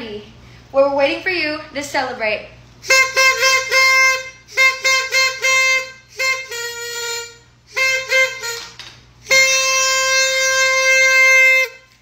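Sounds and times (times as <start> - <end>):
party horn blown: 2.8 - 12.0.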